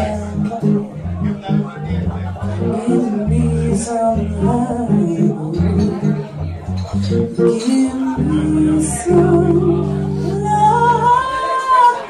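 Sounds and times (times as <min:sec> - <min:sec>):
low electric bass note: 0:00.0 - 0:11.2
woman singing long held note: 0:07.5 - 0:12.0.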